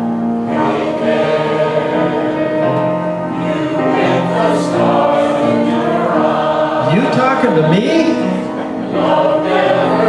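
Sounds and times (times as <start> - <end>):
choir singing held chords: 0.0 - 10.0
man singing solo: 6.8 - 8.4.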